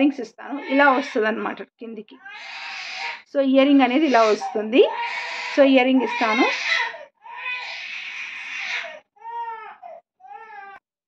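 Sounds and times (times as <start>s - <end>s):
infant crying: 0.5s - 1.3s, 2.2s - 3.3s, 3.9s - 10.8s.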